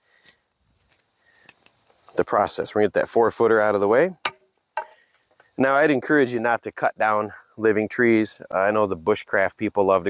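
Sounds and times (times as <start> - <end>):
soft faint clicks: 0.9 - 2.2.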